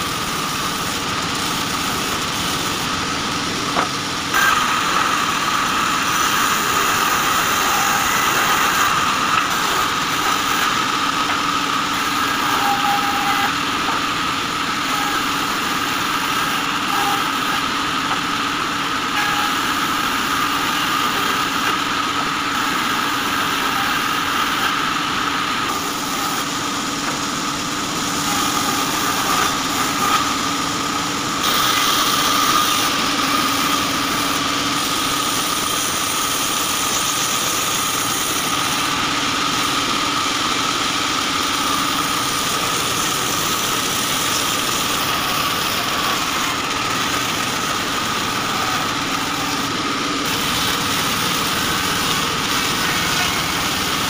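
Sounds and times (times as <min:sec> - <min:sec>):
band saw cutting log: 0:00.0 - 0:54.0.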